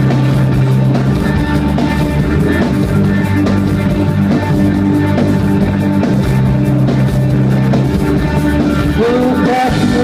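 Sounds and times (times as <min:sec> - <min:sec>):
drum kit: 0:00.0 - 0:10.0
electric bass: 0:00.0 - 0:10.0
electric guitar: 0:00.0 - 0:10.0.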